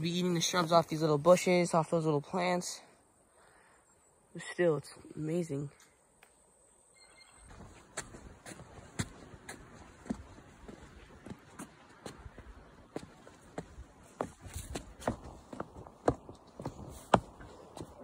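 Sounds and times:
footsteps on wooden planks: 0:07.5 - 0:18.0
rustle of brush: 0:07.5 - 0:18.0.

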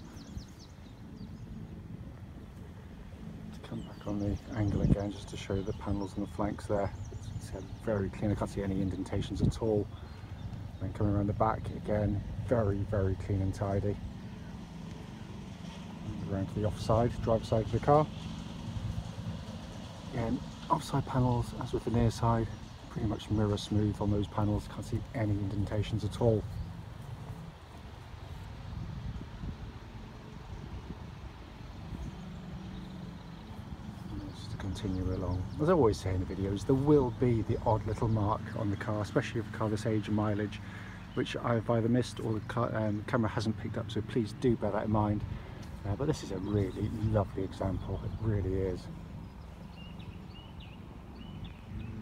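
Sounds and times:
birds chirping: 0:00.0 - 0:52.0
low outdoor rumble: 0:00.0 - 0:52.0.

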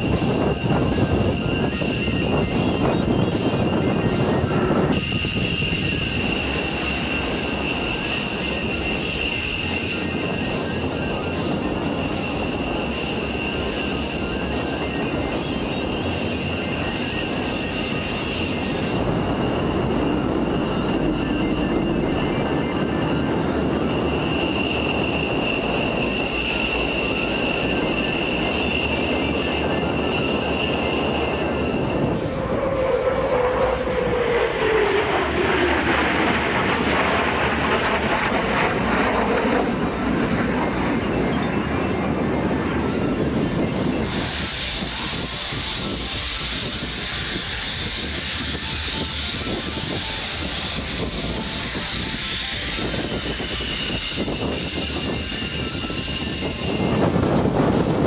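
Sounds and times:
jet engine high whine: 0:00.0 - 0:58.0
jets roaring overhead: 0:00.0 - 0:58.0.

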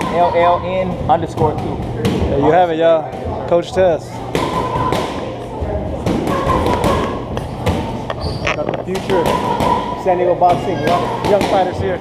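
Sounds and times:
gym chatter: 0:00.0 - 0:12.0.

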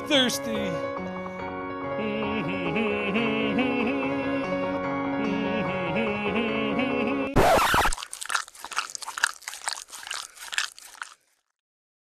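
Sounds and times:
crunchy chewing: 0:07.4 - 0:11.6.

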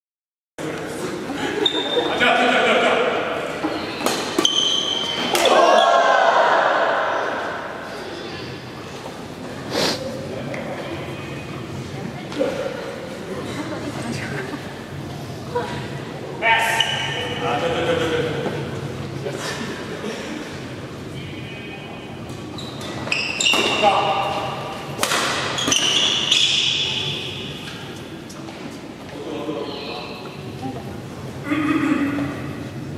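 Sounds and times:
shoes squeaking on court floor: 0:01.6 - 0:02.2, 0:03.6 - 0:05.8, 0:22.2 - 0:28.8
rackets striking shuttlecock: 0:25.0 - 0:26.8.

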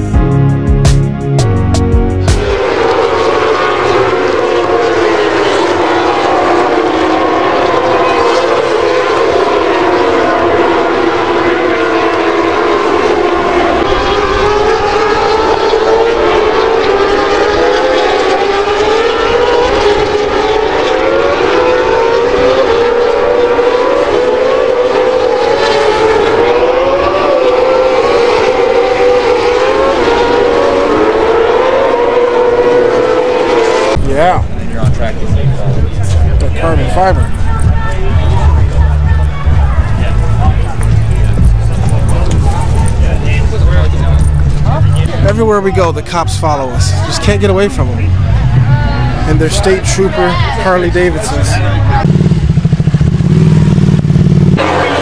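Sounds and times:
racing motorcycles revving: 0:00.0 - 0:55.0.

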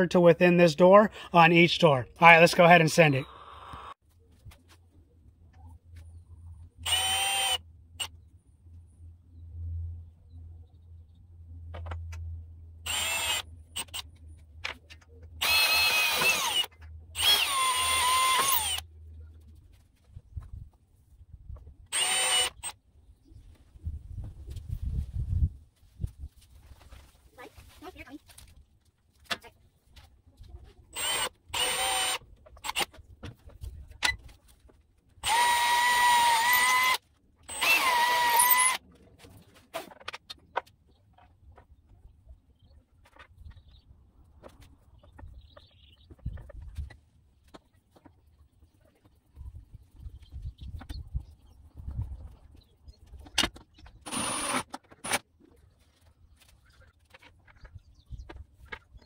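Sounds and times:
cordless drill boring wood: 0:06.8 - 0:07.6, 0:12.8 - 0:14.0, 0:15.4 - 0:18.8, 0:21.9 - 0:22.8, 0:31.0 - 0:32.8, 0:35.2 - 0:38.8, 0:54.0 - 0:55.2.

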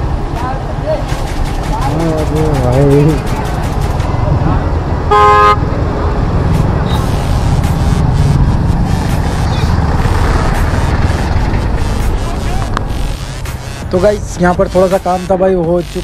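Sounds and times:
motorcycle riding rumble: 0:00.0 - 0:16.0
vehicle horn honk: 0:05.1 - 0:05.6.

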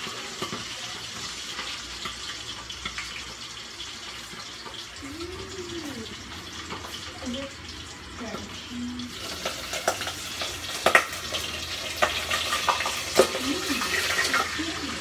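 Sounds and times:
water bubbling in pot: 0:00.0 - 0:15.0.

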